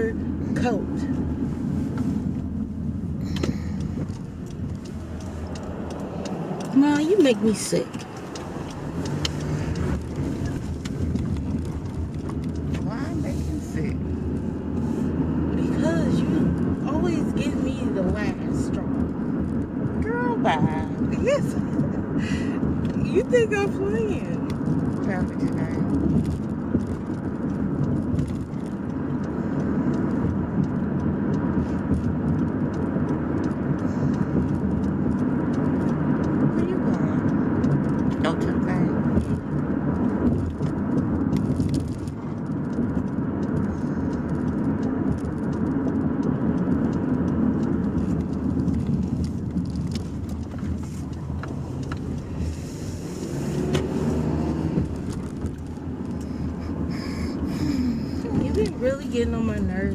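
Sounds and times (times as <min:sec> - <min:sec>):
car cabin road and engine noise: 0:00.0 - 0:59.9.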